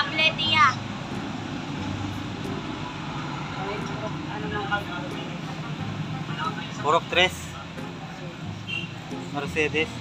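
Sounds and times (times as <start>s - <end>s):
roadside traffic: 0.0s - 10.0s.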